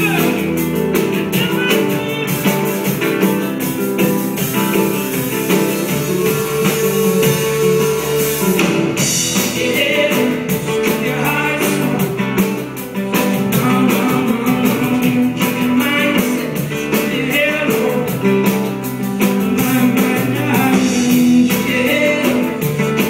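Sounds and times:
drum kit steady beat: 0.0s - 23.0s
live folk-rock band: 0.0s - 23.0s.

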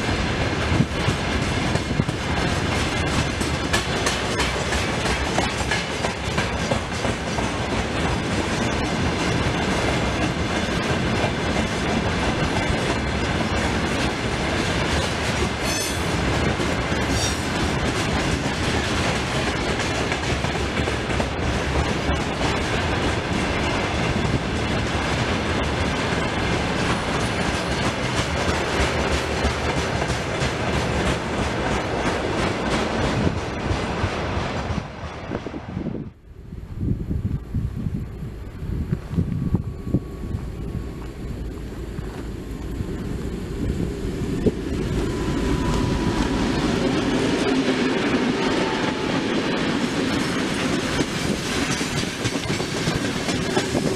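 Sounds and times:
train wheels clattering over rails: 0.0s - 35.3s, 40.5s - 53.9s.

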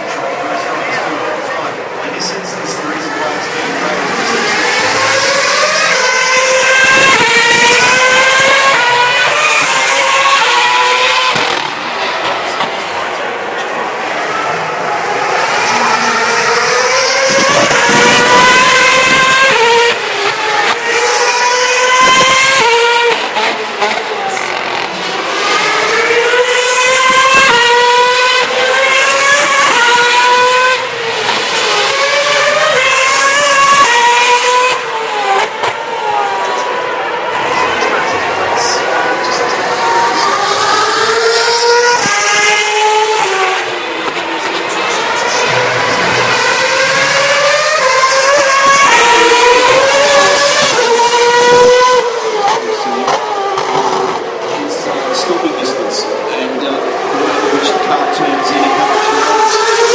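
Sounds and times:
racing car engine accelerating: 0.0s - 59.9s.

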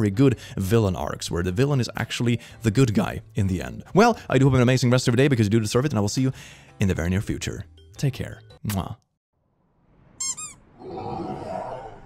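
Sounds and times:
high-pitched squeaks: 10.2s - 10.7s.

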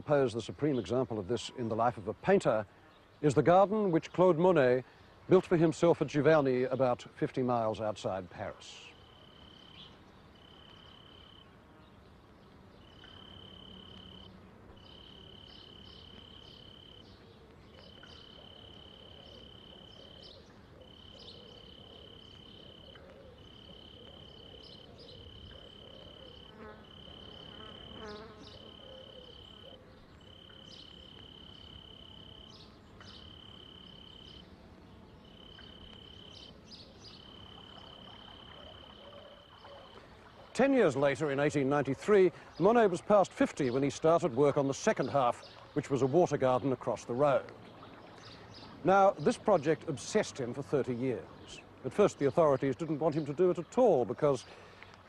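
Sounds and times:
faint outdoor background noise: 0.0s - 55.0s
insect trilling: 13.0s - 17.1s, 17.8s - 32.6s, 33.2s - 34.4s, 35.2s - 40.0s.

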